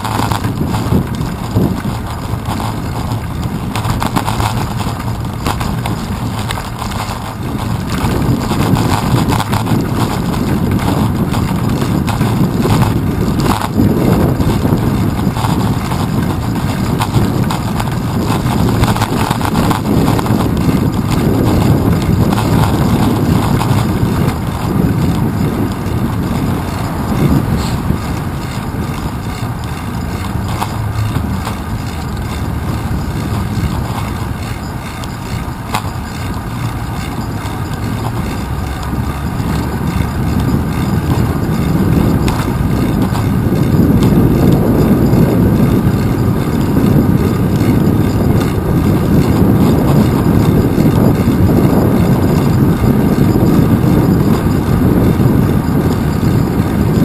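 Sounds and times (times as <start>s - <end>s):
wind and road rumble: 0.0s - 57.0s.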